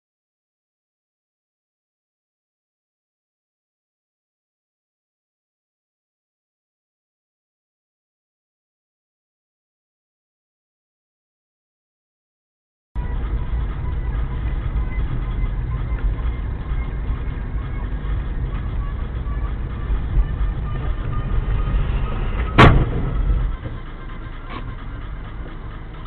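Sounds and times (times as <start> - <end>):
car road and engine rumble: 13.0 - 26.0
loud crash bang: 21.6 - 23.5.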